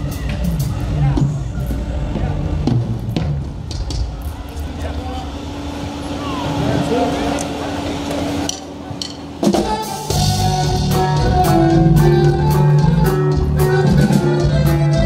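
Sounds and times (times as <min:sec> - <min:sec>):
crowd voices: 0:00.0 - 0:15.0
live band playing loudly: 0:00.0 - 0:15.0.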